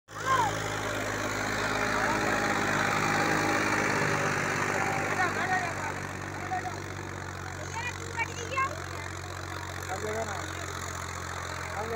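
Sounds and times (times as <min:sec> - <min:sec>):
tractor diesel engine under load: 0:00.1 - 0:11.9.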